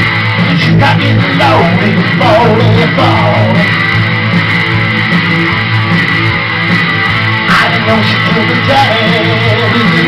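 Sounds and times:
rock guitar chords ringing: 0:00.0 - 0:10.0.

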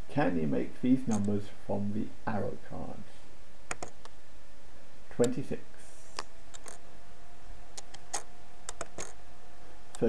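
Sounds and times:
computer mouse clicks: 0:01.1 - 0:01.4, 0:03.7 - 0:04.2, 0:06.1 - 0:06.8, 0:07.8 - 0:09.2.

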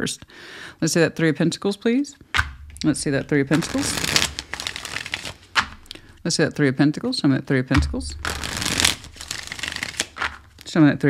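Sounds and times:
cards being shuffled: 0:02.4 - 0:06.0, 0:07.8 - 0:10.7.

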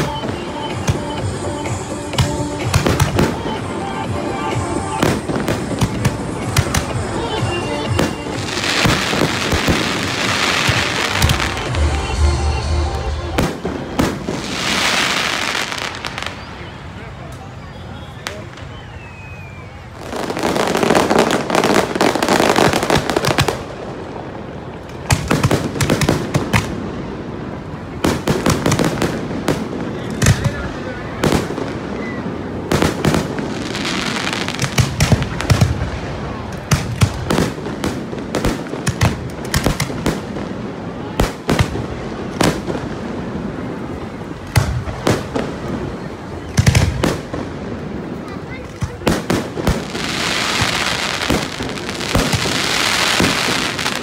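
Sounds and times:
fireworks bangs and cracks: 0:00.0 - 0:16.6, 0:19.9 - 0:54.0
fireworks crackling hiss: 0:00.0 - 0:54.0.

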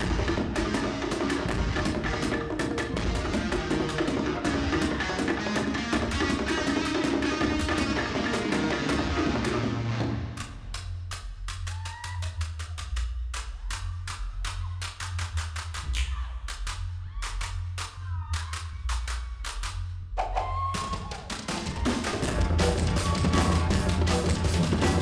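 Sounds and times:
low bass drum beat: 0:00.0 - 0:05.3, 0:21.1 - 0:25.0
rapid wooden slit-drum strokes: 0:00.0 - 0:25.0.

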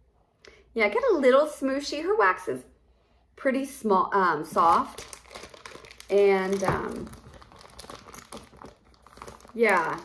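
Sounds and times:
plastic wrapping crinkling: 0:04.5 - 0:10.0.

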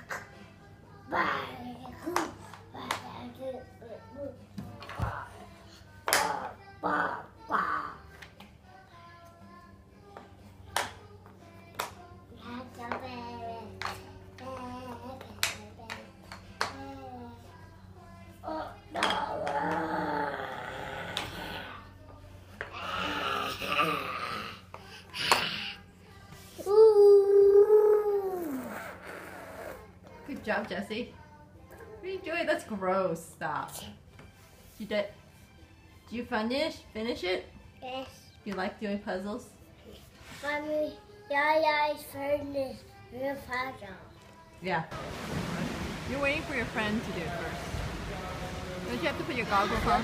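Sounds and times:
child's voice: 0:00.0 - 0:08.2, 0:12.3 - 0:17.7, 0:18.4 - 0:22.0, 0:26.6 - 0:30.4, 0:37.8 - 0:38.3, 0:39.8 - 0:44.4
background music: 0:00.0 - 0:50.0
voices: 0:42.0 - 0:50.0.

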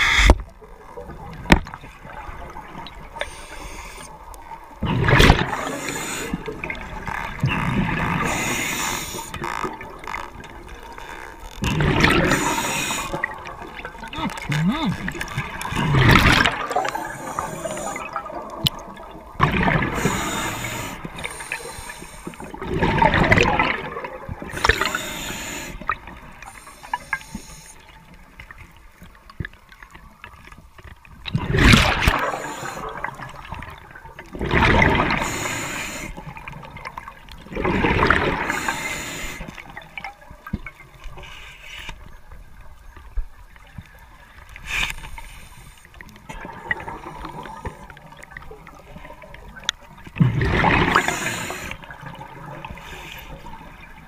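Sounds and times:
diver breathing through regulator: 0:03.2 - 0:04.2, 0:05.5 - 0:06.7, 0:08.1 - 0:09.4, 0:12.1 - 0:13.3, 0:16.7 - 0:18.2, 0:19.9 - 0:22.5, 0:24.5 - 0:27.9, 0:32.1 - 0:33.0, 0:35.1 - 0:36.3, 0:38.4 - 0:39.6, 0:50.8 - 0:51.9
gurgles of exhaled bubbles: 0:04.7 - 0:11.0, 0:11.6 - 0:27.2, 0:31.2 - 0:41.0, 0:46.2 - 0:54.0.

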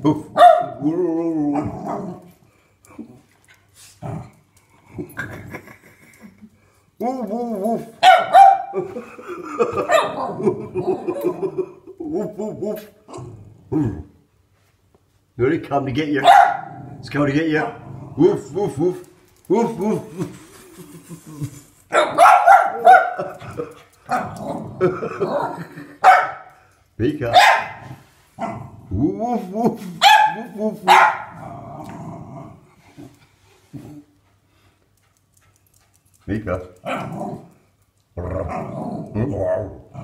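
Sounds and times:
small dog barking: 0:00.4 - 0:00.8, 0:08.0 - 0:08.8, 0:16.2 - 0:16.7, 0:21.9 - 0:23.2, 0:26.0 - 0:26.5, 0:27.3 - 0:27.8, 0:30.0 - 0:31.3.

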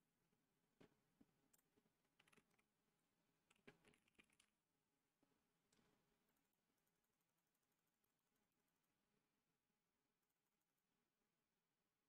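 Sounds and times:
computer keyboard typing: 0:02.1 - 0:02.7, 0:03.5 - 0:04.5.

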